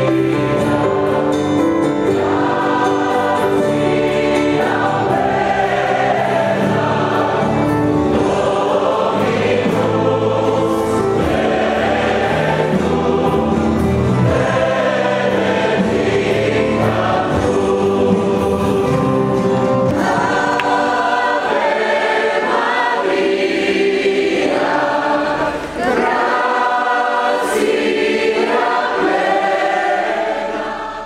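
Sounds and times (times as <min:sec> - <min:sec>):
choir singing religious music: 0:00.0 - 0:31.0.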